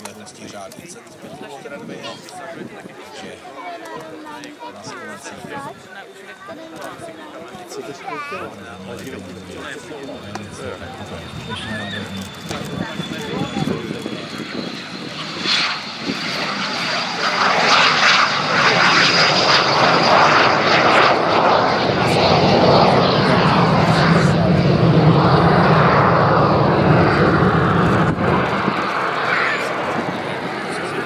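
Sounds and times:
jet engine at take-off power: 0:00.0 - 0:31.0.

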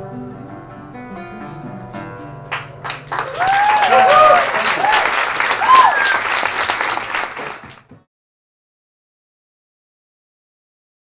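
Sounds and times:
audience applauding: 0:02.5 - 0:07.9.

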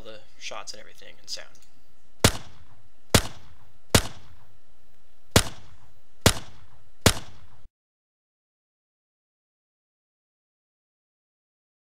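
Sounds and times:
pistol shots: 0:02.2 - 0:04.5, 0:05.3 - 0:07.7.

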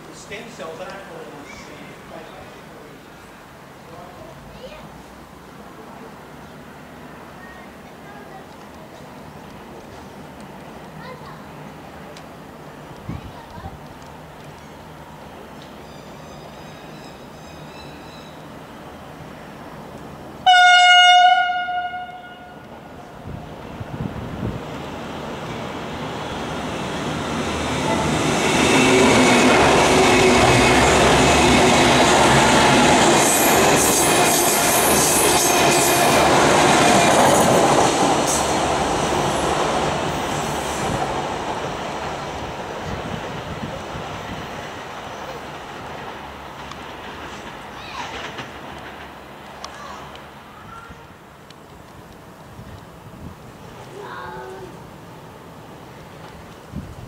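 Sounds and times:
diesel train passing: 0:00.0 - 0:13.1, 0:13.7 - 0:54.0, 0:54.7 - 0:57.0
train horn blast: 0:20.4 - 0:22.7.

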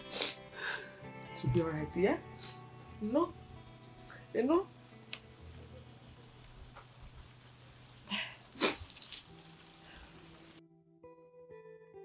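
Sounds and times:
soft background music: 0:00.0 - 0:08.5, 0:09.2 - 0:12.0.

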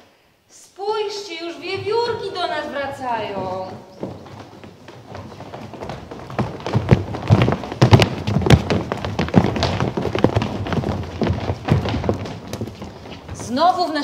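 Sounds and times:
children running on stage floor: 0:01.6 - 0:14.0.

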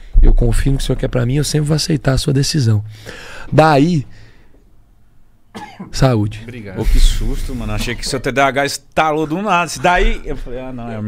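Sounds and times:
man sneezing: 0:05.5 - 0:05.9.

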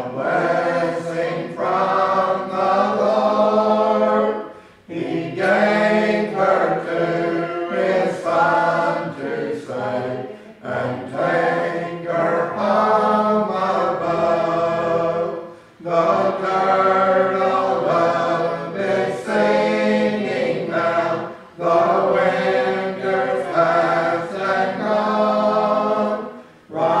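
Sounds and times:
congregation singing a hymn: 0:00.0 - 0:27.0.

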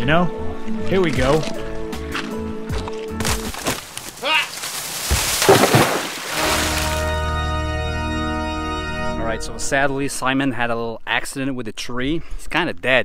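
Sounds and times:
tree cracking and crashing: 0:02.8 - 0:07.2.

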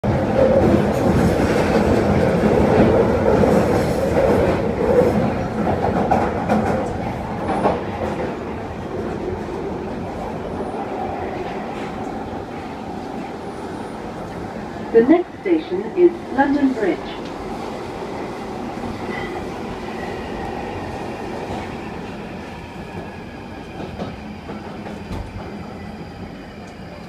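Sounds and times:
train rumbling in tunnel: 0:00.0 - 0:27.0.

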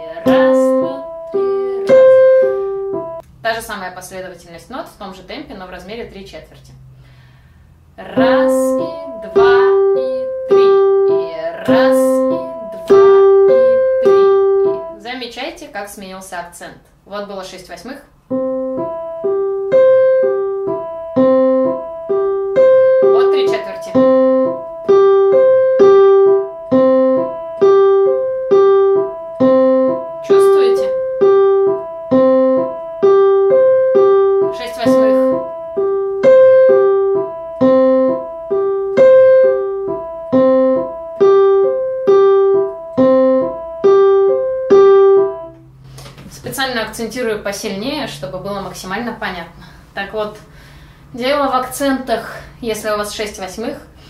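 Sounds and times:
electronic keyboard piano figure: 0:00.0 - 0:03.7, 0:07.9 - 0:15.4, 0:18.1 - 0:49.2.

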